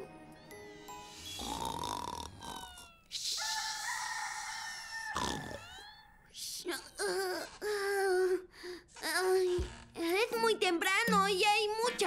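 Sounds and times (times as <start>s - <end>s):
bright sustained music tones: 0.0s - 2.2s
soft cartoon music: 0.0s - 3.1s, 6.8s - 12.0s
cartoon snoring: 1.1s - 2.9s, 5.1s - 5.9s.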